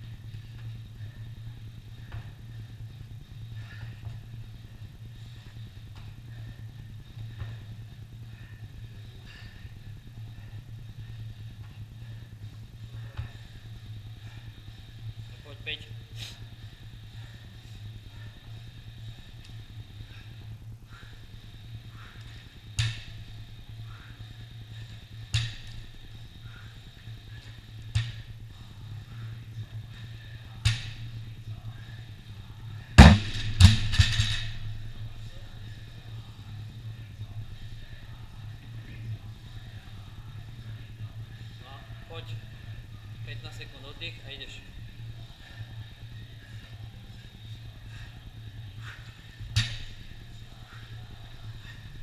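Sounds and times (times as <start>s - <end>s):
steady low hum: 0.0s - 52.0s
barbell knocking on rubber floor: 33.0s - 34.5s
barbell crashing and bouncing: 33.0s - 34.6s.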